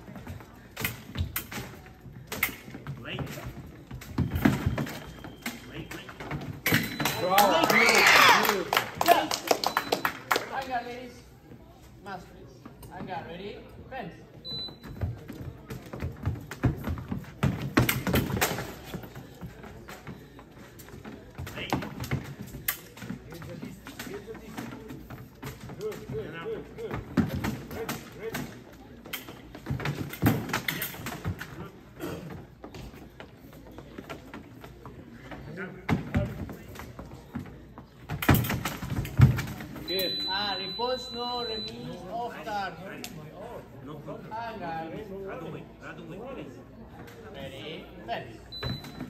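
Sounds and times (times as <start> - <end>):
fencing footwork thumps and taps: 0.0 - 7.6, 14.9 - 34.9
background chatter: 0.0 - 49.0.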